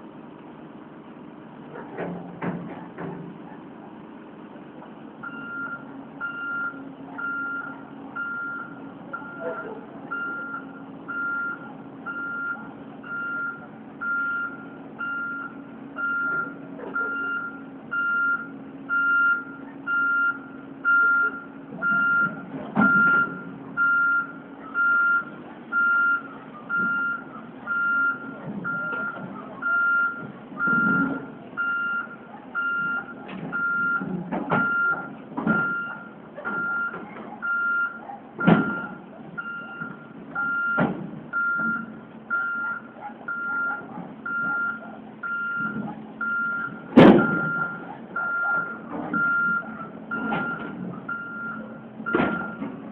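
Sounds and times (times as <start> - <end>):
diesel engine running: 0.0 - 52.9
excavator travel alarm beeping: 5.2 - 52.8.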